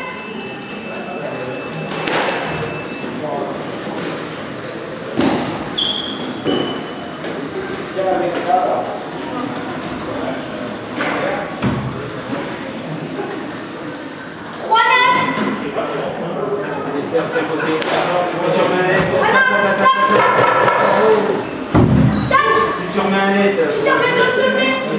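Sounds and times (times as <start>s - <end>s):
sneaker squeaks on wooden floor: 5.2s - 7.1s, 22.0s - 22.4s.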